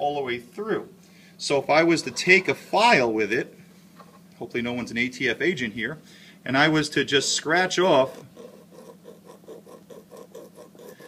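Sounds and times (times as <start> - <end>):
metal file rasping on coin: 8.1 - 11.0.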